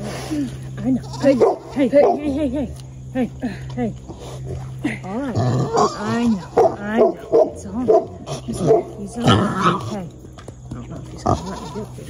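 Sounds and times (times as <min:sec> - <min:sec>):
low hum: 0:00.0 - 0:12.0
pig calling: 0:05.4 - 0:10.0.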